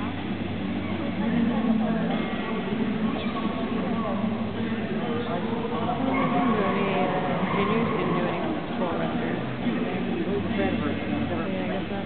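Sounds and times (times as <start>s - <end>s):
many people chattering: 0.0s - 12.0s
steady low hum: 0.0s - 12.0s.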